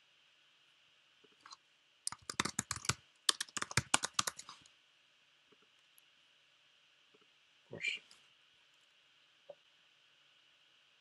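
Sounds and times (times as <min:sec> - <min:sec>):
typing on computer keyboard: 0:02.1 - 0:04.6.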